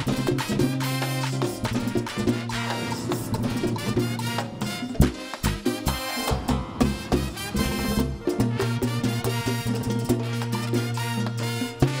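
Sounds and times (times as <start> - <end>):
congas: 0.0 - 12.0
trumpets and trombone: 0.0 - 12.0.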